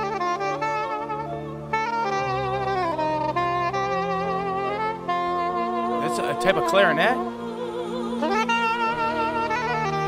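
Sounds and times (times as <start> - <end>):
saxophone-like woodwind melody: 0.0 - 10.0
soft sustained accompaniment: 0.0 - 10.0.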